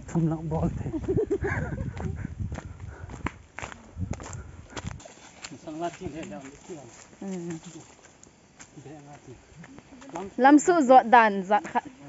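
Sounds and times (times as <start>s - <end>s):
footsteps on dirt trail: 0.0s - 10.5s, 11.5s - 11.9s.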